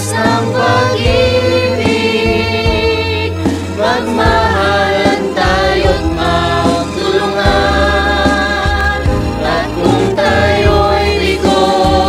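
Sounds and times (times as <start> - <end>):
church choir singing: 0.0 - 12.0
low bass accompaniment: 0.0 - 12.0.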